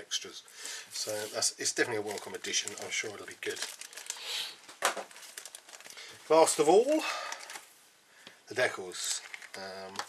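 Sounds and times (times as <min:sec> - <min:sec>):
plastic bag crinkling: 0:00.6 - 0:07.7, 0:09.0 - 0:10.0.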